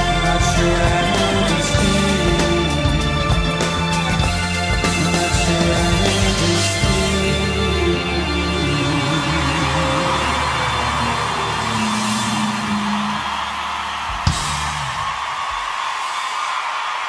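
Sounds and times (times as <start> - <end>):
live band music: 0.0 - 13.4
crowd cheering: 0.0 - 17.0.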